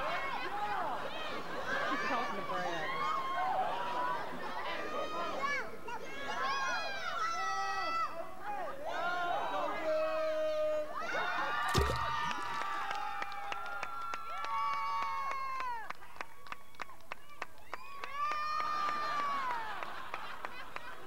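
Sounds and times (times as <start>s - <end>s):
loud splash into water: 11.7s - 12.4s.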